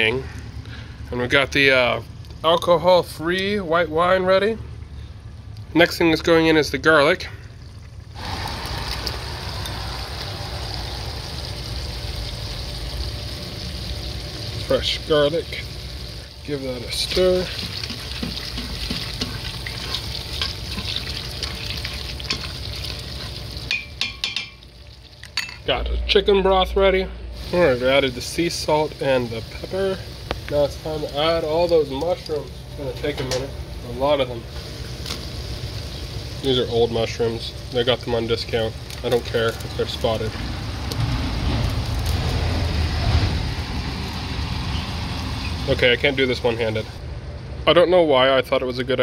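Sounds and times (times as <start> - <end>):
vegetables sizzling in oil: 8.1 - 25.4, 27.4 - 47.0
low rumble: 25.6 - 29.4, 40.3 - 45.4.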